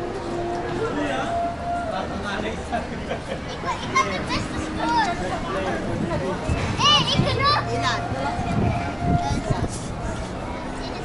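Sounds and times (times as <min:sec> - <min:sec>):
people talking: 0:00.7 - 0:11.0
children's voices: 0:03.3 - 0:11.0
high-pitched child's call: 0:06.8 - 0:09.7.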